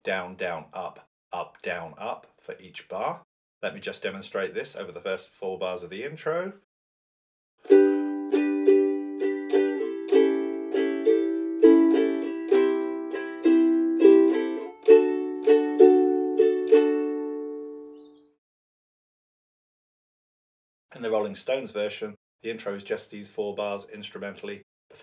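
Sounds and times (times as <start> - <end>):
ukulele strumming: 7.6 - 17.6.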